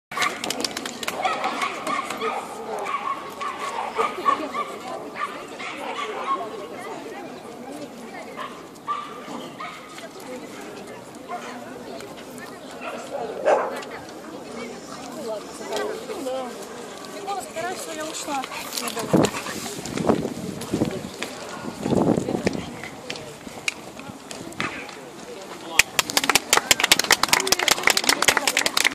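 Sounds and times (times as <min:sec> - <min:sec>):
small group applauding: 0:00.1 - 0:01.8, 0:25.8 - 0:28.9
people talking: 0:00.2 - 0:28.9.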